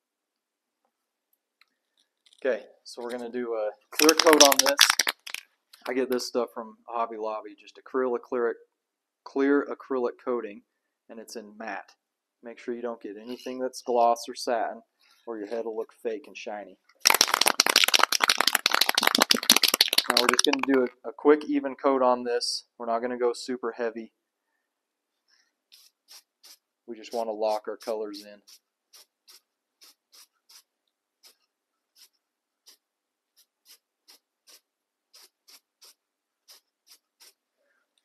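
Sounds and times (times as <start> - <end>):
aerosol can mixing ball rattling: 3.9 - 5.9, 17.0 - 20.9, 25.7 - 31.4, 33.4 - 37.4.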